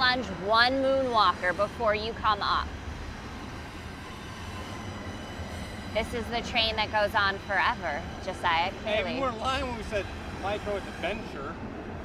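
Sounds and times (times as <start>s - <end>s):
train passing: 0.0s - 12.0s.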